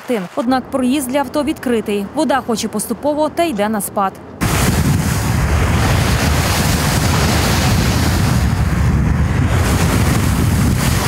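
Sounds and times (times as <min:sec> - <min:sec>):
water rushing: 0:00.0 - 0:02.9, 0:04.4 - 0:11.0
wind buffeting microphone: 0:04.3 - 0:11.0.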